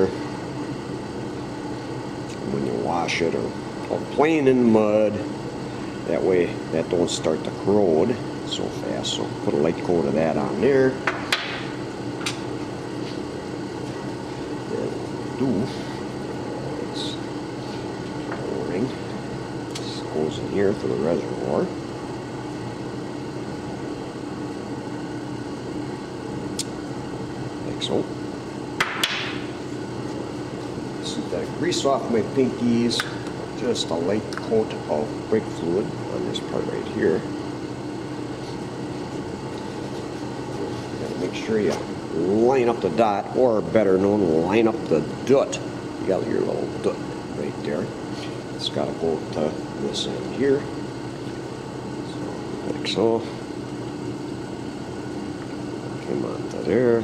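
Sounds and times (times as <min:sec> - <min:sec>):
low background hum: 0:00.0 - 0:57.0.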